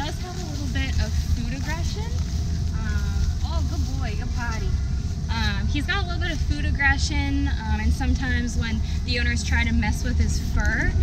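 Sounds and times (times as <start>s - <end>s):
steady low rumble: 0.0s - 11.0s
woman speaking: 0.0s - 11.0s.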